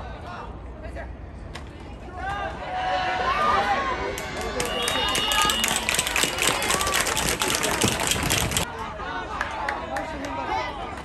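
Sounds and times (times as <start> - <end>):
crowd clapping fast: 4.2 - 8.7.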